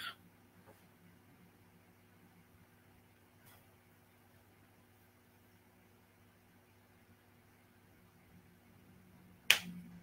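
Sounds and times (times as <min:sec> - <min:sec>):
faint room hum: 0:00.0 - 0:10.0.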